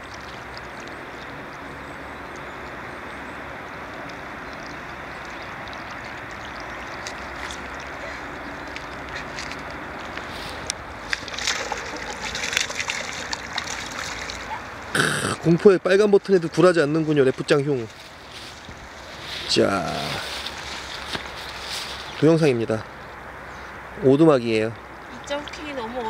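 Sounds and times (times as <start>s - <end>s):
rushing water: 0.0s - 26.0s
fish splashing at surface: 4.0s - 15.4s.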